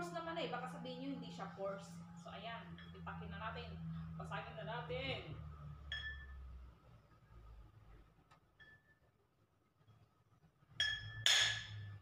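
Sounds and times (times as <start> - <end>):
hammer clinking glass bottle: 10.8 - 11.8.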